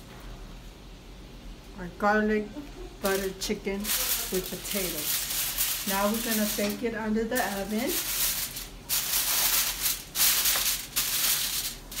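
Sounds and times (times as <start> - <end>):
aluminium foil crinkling: 3.0 - 12.0.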